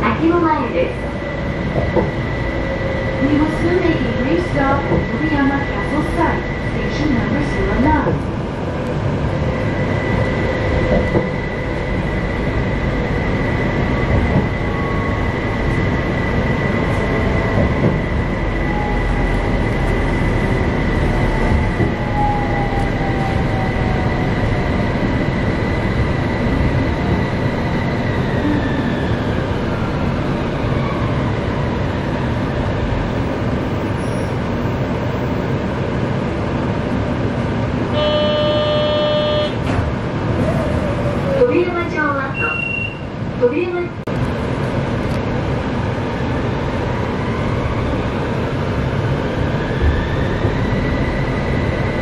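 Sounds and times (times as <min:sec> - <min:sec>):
tram wheels rumbling on rail: 0:00.0 - 0:52.0
short electronic tone: 0:38.0 - 0:39.6.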